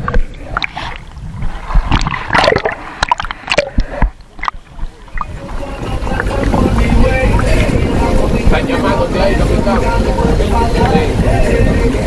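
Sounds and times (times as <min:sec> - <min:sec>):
moving boat running noise: 0:00.0 - 0:12.0
wind rush on microphone: 0:00.0 - 0:12.0
voices: 0:03.9 - 0:12.0.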